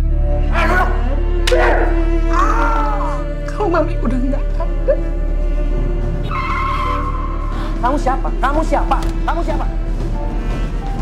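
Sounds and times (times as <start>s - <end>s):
low music bed: 0.0s - 11.0s.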